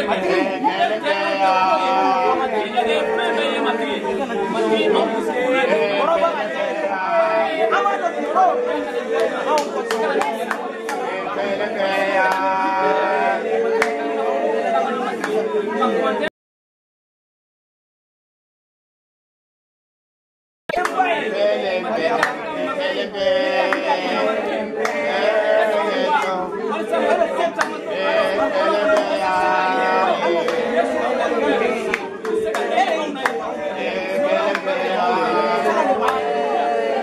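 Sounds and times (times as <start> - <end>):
children praying aloud: 0.0 - 16.3, 20.8 - 37.0.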